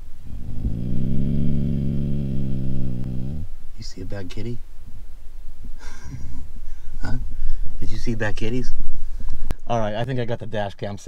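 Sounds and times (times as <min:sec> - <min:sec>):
dog growling: 0:00.3 - 0:03.6.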